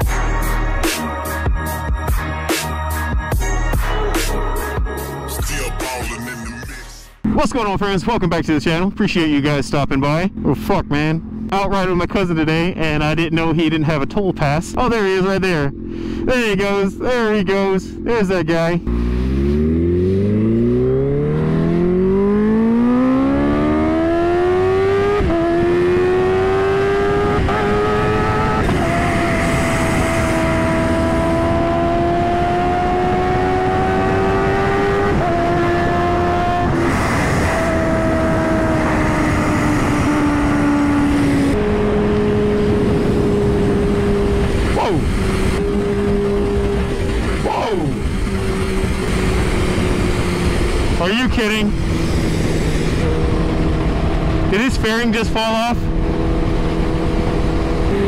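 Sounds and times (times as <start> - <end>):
motorcycle engine revving: 9.8 - 58.0
wind rush on microphone: 27.0 - 58.0.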